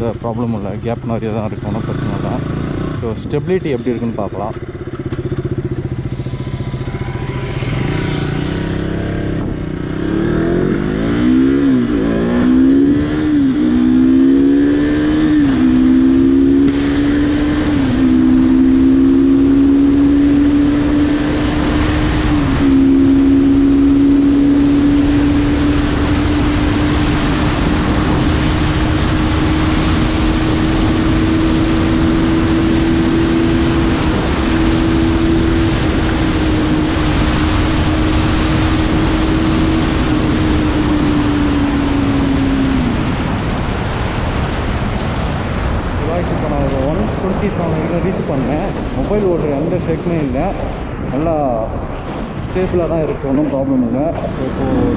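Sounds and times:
motorcycle accelerating through gears: 0.0 - 54.9.

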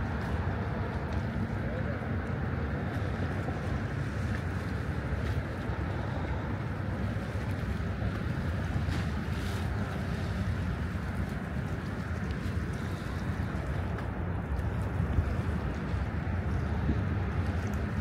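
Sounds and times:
small waves lapping on stone: 0.0 - 18.0
wind rumbling on microphone: 0.0 - 18.0.

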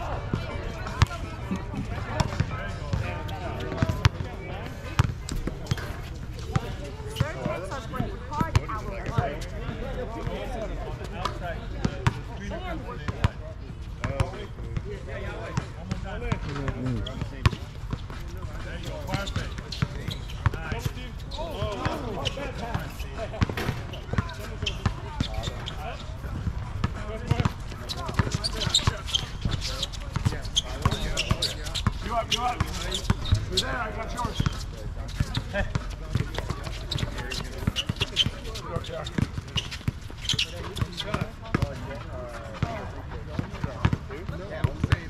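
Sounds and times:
basketball bouncing on hard court: 27.2 - 33.4, 35.2 - 38.3.

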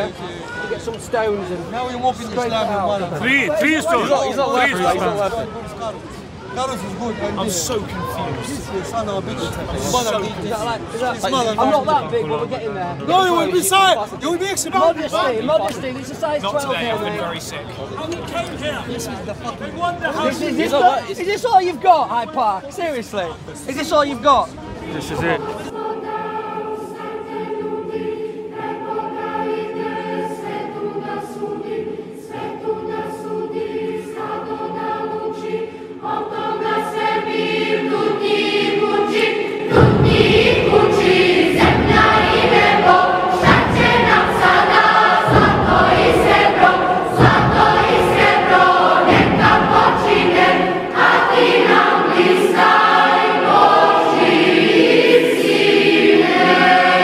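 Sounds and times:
choir singing: 2.2 - 5.6, 24.8 - 57.0
heavy steady beat: 39.2 - 57.0.

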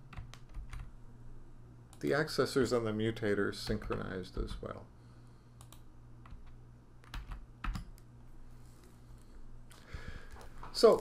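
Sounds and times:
quiet keyboard keystrokes: 0.1 - 0.9, 3.6 - 4.8, 5.6 - 8.1.

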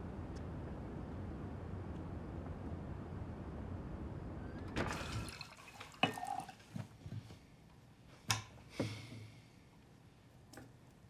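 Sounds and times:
wine pouring from a bottle: 4.8 - 6.9
glasses clinking: 5.2 - 6.6.

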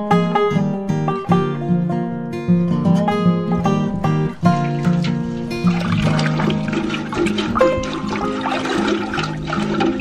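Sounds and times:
water swirling and sloshing: 4.4 - 10.0.

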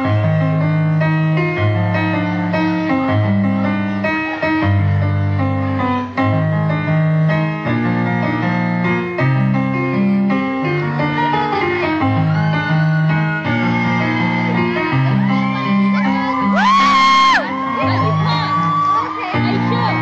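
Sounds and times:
piano-like keyboard chords: 0.0 - 20.0.

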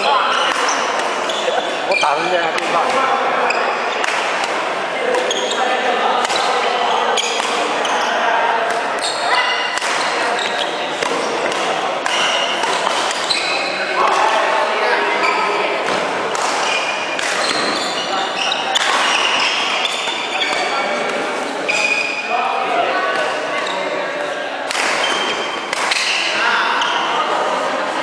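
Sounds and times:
sneakers squeaking on wooden court: 0.0 - 2.6, 5.2 - 5.7, 7.2 - 8.2, 9.0 - 13.8, 16.6 - 21.0, 21.7 - 22.2
people's voices: 0.0 - 28.0
rackets striking shuttlecock: 8.6 - 13.6, 15.9 - 17.8, 18.7 - 21.9, 24.7 - 26.3.

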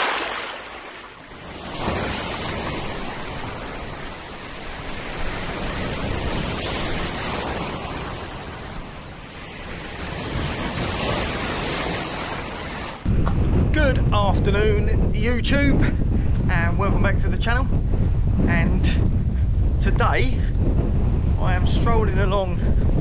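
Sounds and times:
small waves breaking in surf: 0.0 - 13.1.

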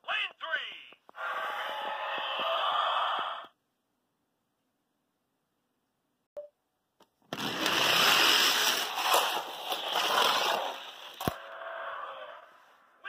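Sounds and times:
toy cars rattling down plastic track: 7.3 - 11.4.

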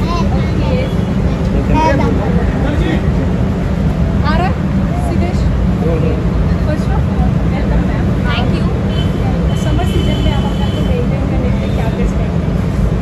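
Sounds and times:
faint voices: 0.0 - 12.6
low rumble of street noise: 0.0 - 13.0.

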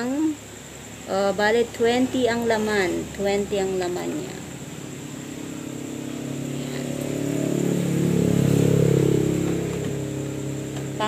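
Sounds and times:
motor vehicle passing: 0.0 - 11.0.

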